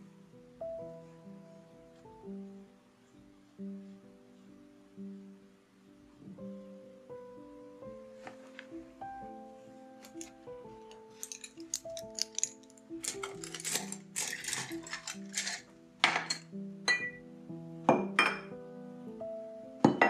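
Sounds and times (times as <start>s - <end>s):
soft background music: 0.0s - 20.0s
painting supplies clinking: 10.0s - 17.2s.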